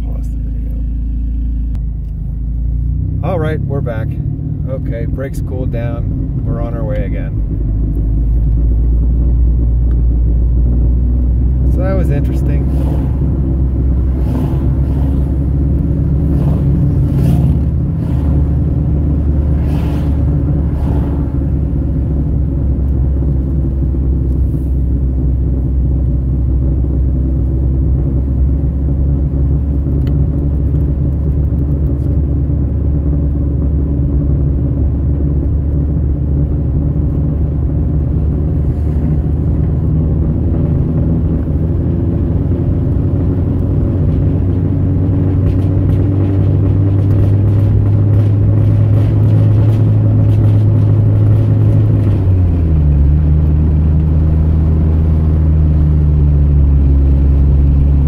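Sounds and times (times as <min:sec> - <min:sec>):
car engine and road rumble: 0:00.0 - 0:58.0.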